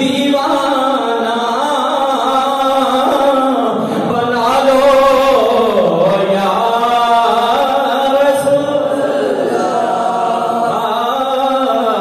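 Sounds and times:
man chanting into a microphone: 0:00.0 - 0:12.0.

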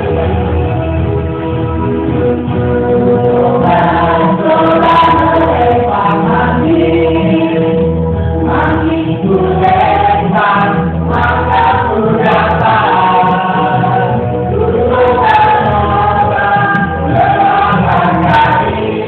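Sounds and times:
musical accompaniment with bass: 0:00.0 - 0:19.0
choir singing: 0:03.2 - 0:19.0.

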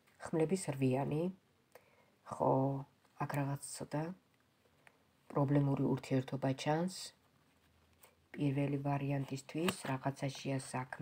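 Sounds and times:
person speaking: 0:00.0 - 0:01.4, 0:02.2 - 0:04.3, 0:05.2 - 0:07.3, 0:08.0 - 0:11.0.

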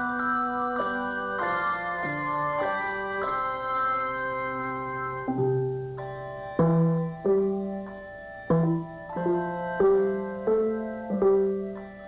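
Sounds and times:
handbell choir ringing chords: 0:00.0 - 0:12.0.

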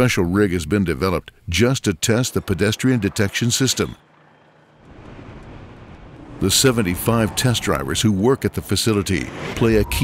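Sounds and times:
car engine and road noise: 0:01.9 - 0:10.0.

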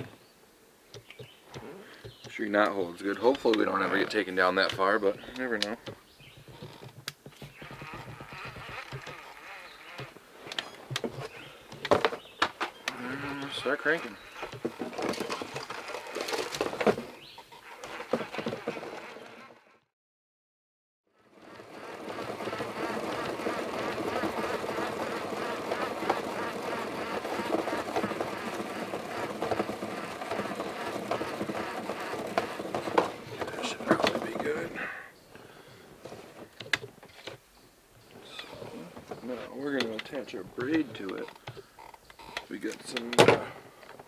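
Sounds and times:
fishing reel cranked by hand: 0:21.4 - 0:34.4.

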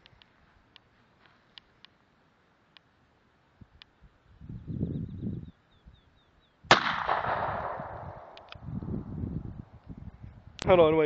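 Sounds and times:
pistol shot with echo: 0:06.7 - 0:08.5.

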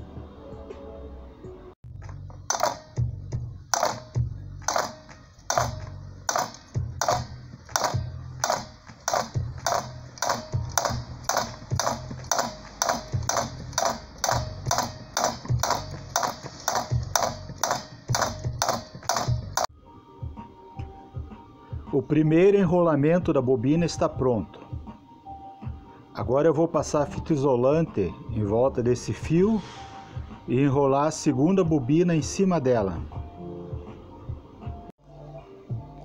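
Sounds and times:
background music: 0:00.0 - 0:36.0
coil winder clicking: 0:02.5 - 0:03.0, 0:03.7 - 0:19.7.

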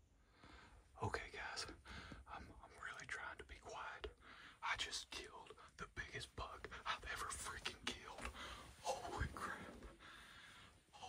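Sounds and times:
man whispering excitedly: 0:01.0 - 0:10.0.

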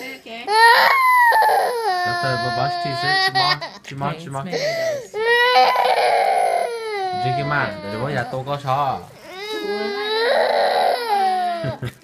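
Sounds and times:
toddler crying: 0:00.5 - 0:03.8, 0:04.9 - 0:11.8.

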